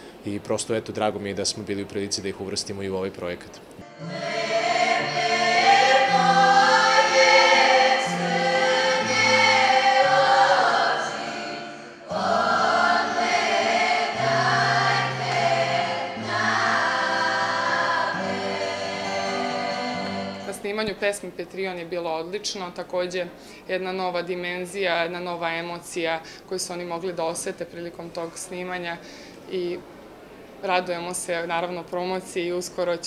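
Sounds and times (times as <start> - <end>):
children's choir singing: 3.8 - 20.5.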